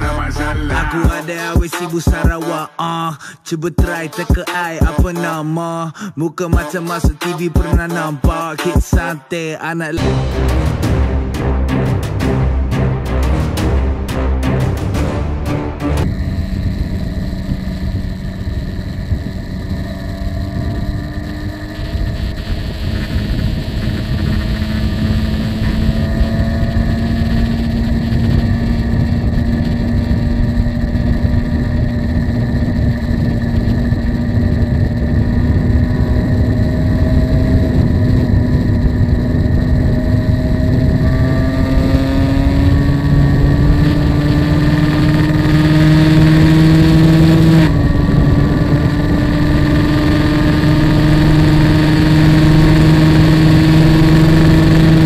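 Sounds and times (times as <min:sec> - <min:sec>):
motorcycle engine at high speed: 0:00.0 - 0:02.6, 0:10.0 - 0:55.0
wind rush over microphone: 0:16.0 - 0:55.0.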